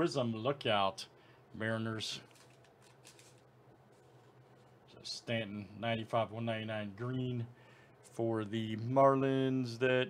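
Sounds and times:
cards sliding and rustling: 2.3s - 4.8s.

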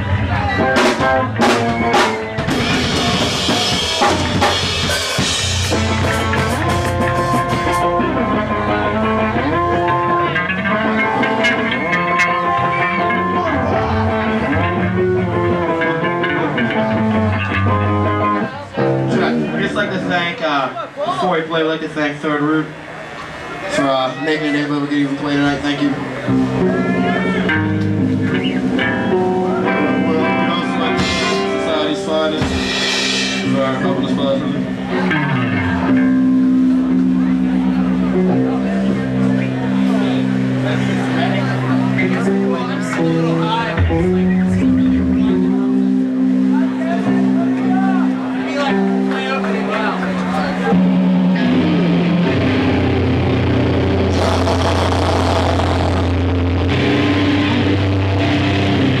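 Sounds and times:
drums: 0.0s - 21.2s, 24.8s - 59.0s
ringing guitar notes: 5.2s - 20.3s, 25.1s - 59.0s
loud hissing burst: 54.1s - 56.5s.

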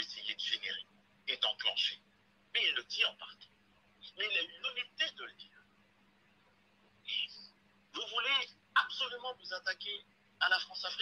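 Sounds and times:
man talking over telephone: 0.0s - 3.4s, 4.0s - 5.6s, 7.1s - 11.0s.

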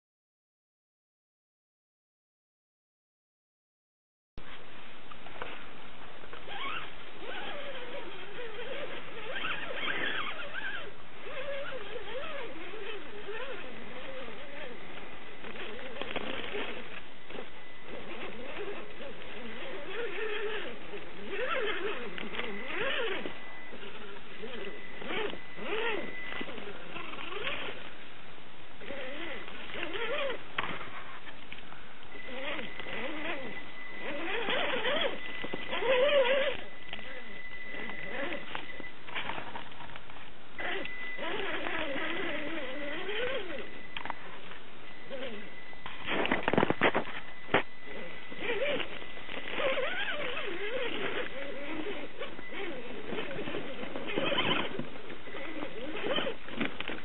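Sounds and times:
toy car motor whining: 6.5s - 27.9s, 28.8s - 30.4s, 32.1s - 38.9s, 40.6s - 44.1s, 45.0s - 57.0s.

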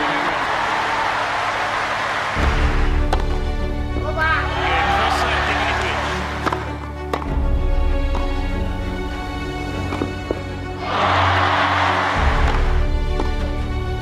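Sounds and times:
crowd applauding and cheering: 0.0s - 7.0s, 10.7s - 13.6s.

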